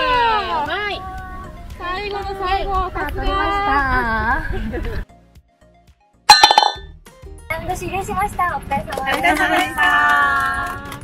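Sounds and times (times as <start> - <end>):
bright chime sound effect: 6.3 - 6.8.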